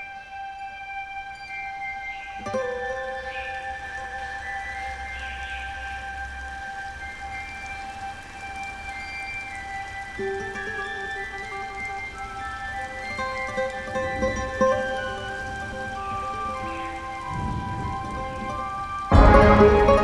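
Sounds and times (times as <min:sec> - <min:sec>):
instrumental hymn chords: 0:00.0 - 0:20.0
soft hiss: 0:00.0 - 0:20.0.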